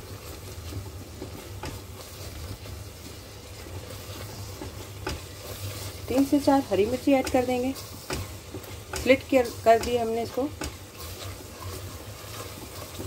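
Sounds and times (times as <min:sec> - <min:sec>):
sauce sizzling in a pot: 0:00.0 - 0:13.0
spatula scraping a pot: 0:00.2 - 0:13.0.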